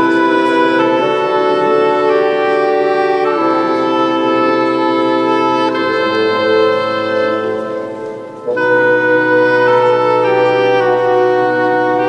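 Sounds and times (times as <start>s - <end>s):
bassoon playing held notes: 0.0s - 12.0s.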